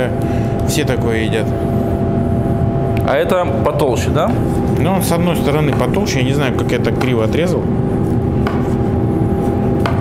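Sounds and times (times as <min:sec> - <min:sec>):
steady mechanical hum: 0:00.0 - 0:10.0.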